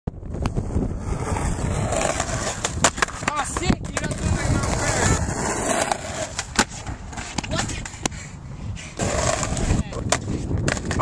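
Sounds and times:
skateboard wheels rolling on concrete: 0.1s - 11.0s
skateboard clacks: 1.9s - 8.2s, 9.0s - 11.0s.

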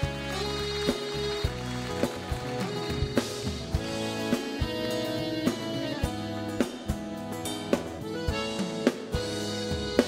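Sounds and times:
accordion melody: 0.0s - 10.0s
bass: 0.0s - 10.0s
steady drum beat: 0.0s - 10.0s.

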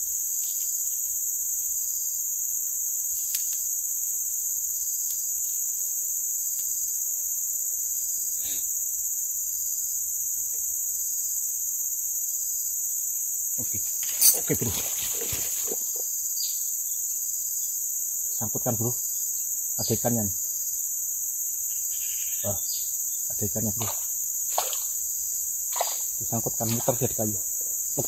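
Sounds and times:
high-pitched insect chorus: 0.0s - 28.0s.

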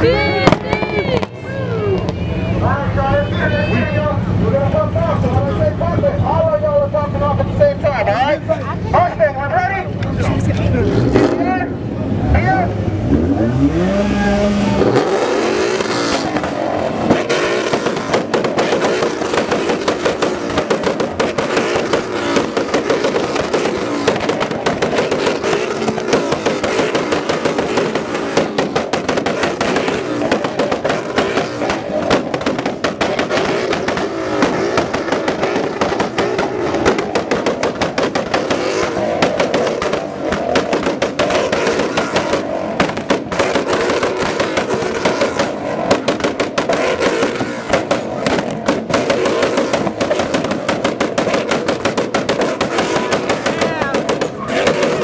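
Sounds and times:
car engines revving hard: 0.0s - 55.0s
exhaust pops crackling: 14.7s - 55.0s.

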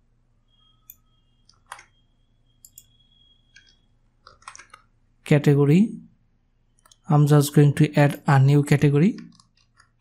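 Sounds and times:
computer mouse clicks: 0.8s - 2.0s, 2.6s - 4.9s, 6.8s - 7.1s, 9.2s - 10.0s.

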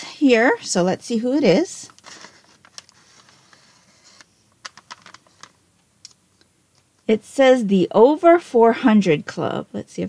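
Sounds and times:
paper crinkling crackles: 1.9s - 5.6s
paper packet rustling: 1.9s - 5.6s.

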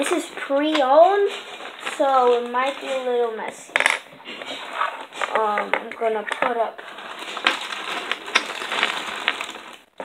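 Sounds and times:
plastic bag rustling: 0.0s - 3.5s, 4.5s - 10.0s
plastic pieces clicking: 7.2s - 9.9s.

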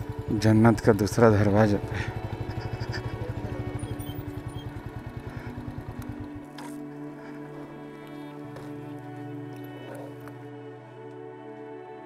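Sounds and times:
motorcycle engine at low revs: 0.0s - 10.4s
music with long held notes: 0.0s - 12.0s.

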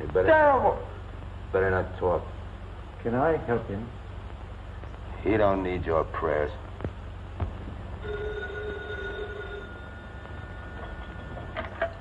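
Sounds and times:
telephone bell ringing: 8.0s - 11.8s.

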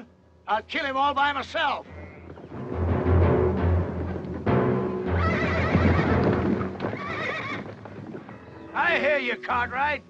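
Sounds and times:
horses galloping: 1.9s - 9.4s
orchestral film music: 2.0s - 6.8s
horse whinnying: 5.1s - 8.7s.

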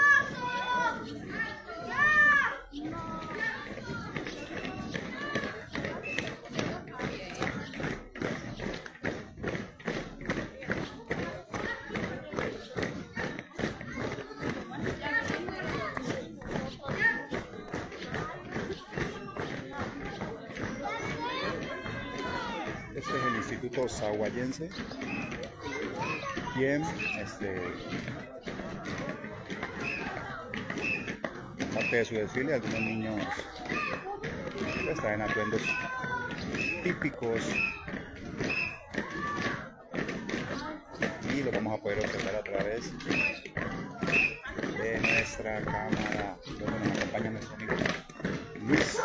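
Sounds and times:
crowd chatter: 0.0s - 49.0s
voices of children and onlookers: 0.0s - 49.0s
marching drum thumps: 1.2s - 49.0s.

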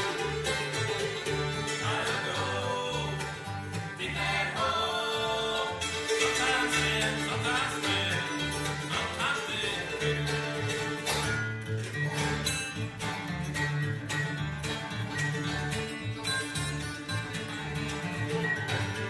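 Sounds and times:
banjo picking: 0.0s - 19.0s
fiddle bowing: 0.0s - 19.0s
guitar picking: 0.0s - 19.0s
mandolin picking: 0.0s - 19.0s
upright bass notes: 0.0s - 19.0s.

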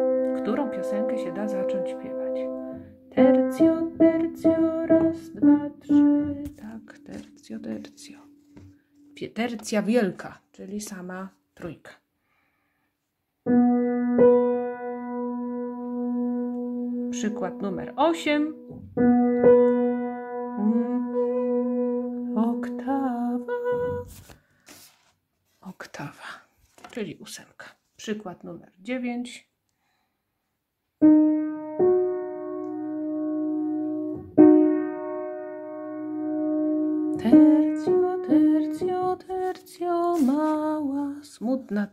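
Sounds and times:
upright piano notes ringing: 0.0s - 7.7s, 13.5s - 23.5s, 31.0s - 39.3s.

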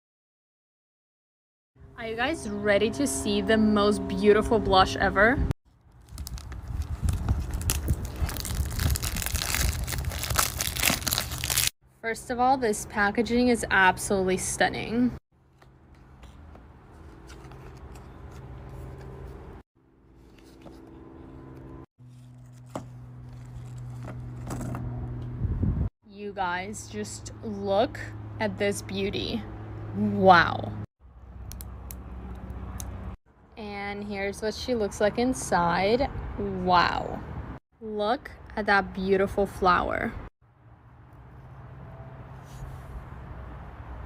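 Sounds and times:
packaging crinkling: 5.9s - 11.7s.

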